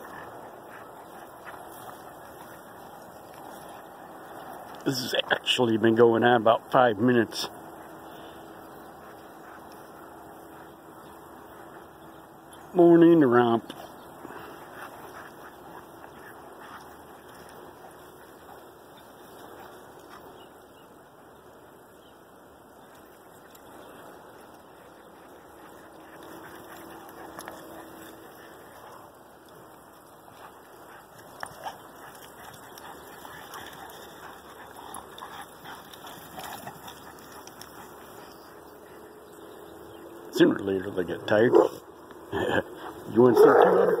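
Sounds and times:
dogs scuffling on grass: 0:00.0 - 0:44.0
dogs growling and yipping: 0:23.5 - 0:29.2, 0:30.3 - 0:40.1, 0:41.5 - 0:44.0.

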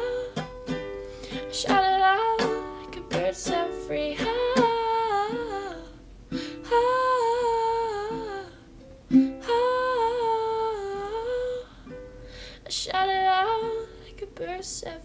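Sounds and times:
ukulele strummed: 0:00.0 - 0:10.7
girl singing: 0:00.0 - 0:15.0.

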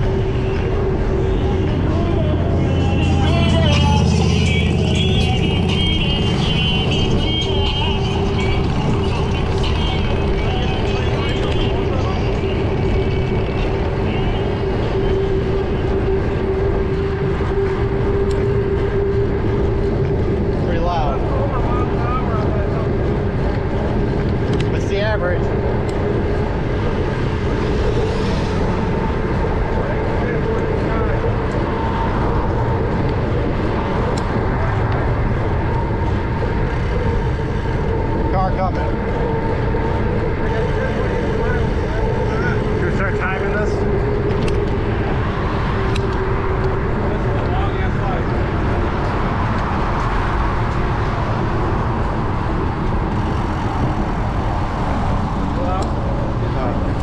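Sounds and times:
constant low hum: 0:00.0 - 0:57.0
wind roaring over microphone: 0:00.0 - 0:57.0.

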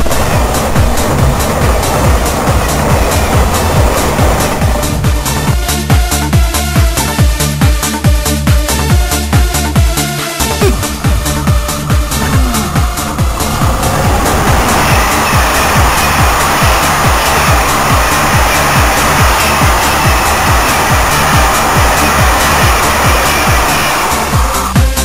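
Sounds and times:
train passing at speed: 0:00.0 - 0:07.2, 0:10.6 - 0:24.8
electronic dance music: 0:10.6 - 0:24.8.

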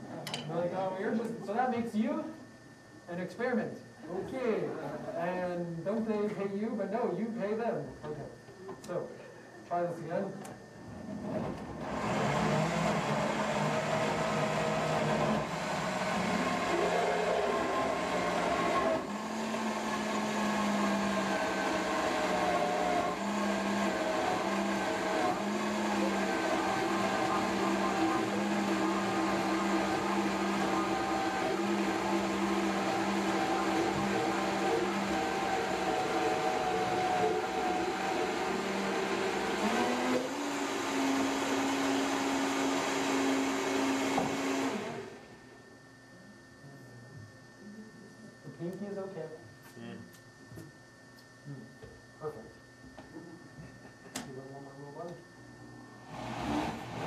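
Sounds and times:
blender motor running: 0:11.2 - 0:45.6, 0:56.0 - 0:57.0.

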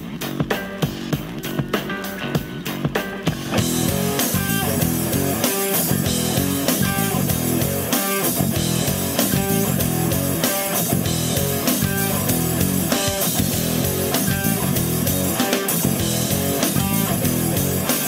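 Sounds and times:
rock backing track: 0:00.0 - 0:18.0.

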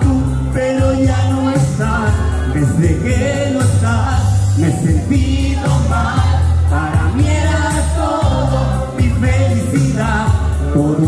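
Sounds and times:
amplified backing track: 0:00.0 - 0:11.0
man singing into microphone: 0:00.0 - 0:11.0
voices singing along: 0:00.0 - 0:11.0.

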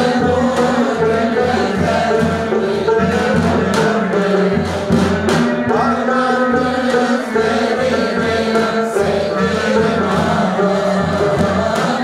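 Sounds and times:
choir singing sustained notes: 0:00.0 - 0:12.0
rhythmic drum-like percussion: 0:00.0 - 0:12.0.

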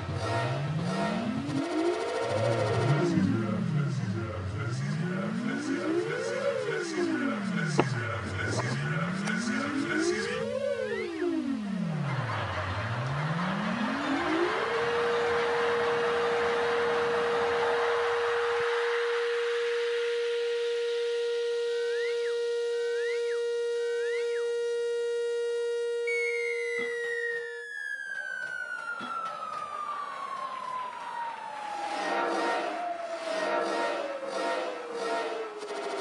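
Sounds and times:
slow falling electronic glide: 0:00.0 - 0:04.0, 0:09.5 - 0:36.0.

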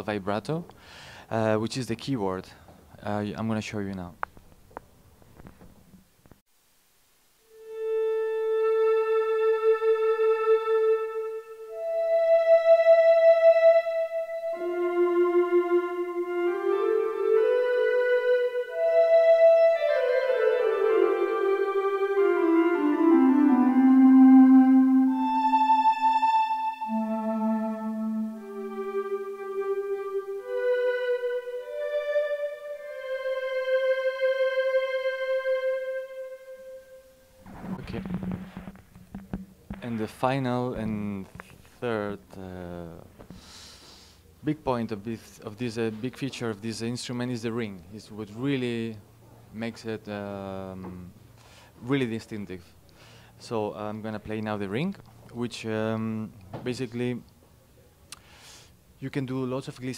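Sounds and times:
electronic keyboard melody with vibrato: 0:07.5 - 0:37.4.

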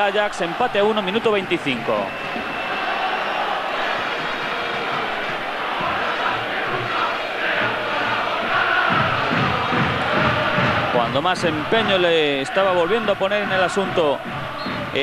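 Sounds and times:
stadium crowd din: 0:00.0 - 0:15.0.

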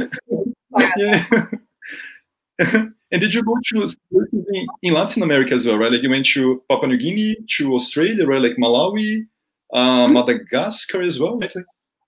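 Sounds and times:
person saying yeah laughing: 0:00.0 - 0:01.6, 0:09.8 - 0:10.4
people laughing: 0:00.0 - 0:04.0
breathy exhale: 0:01.8 - 0:02.2.

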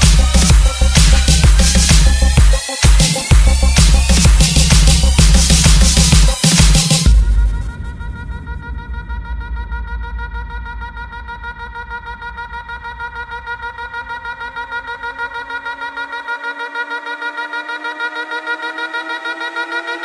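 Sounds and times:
pulsing synthesizer chord: 0:00.0 - 0:08.5
low bass: 0:00.0 - 0:14.0.

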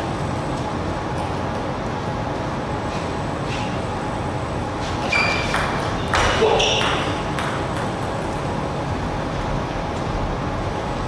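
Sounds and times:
short high squeak: 0:05.0 - 0:05.5
ping pong ball clicking: 0:05.4 - 0:08.3.

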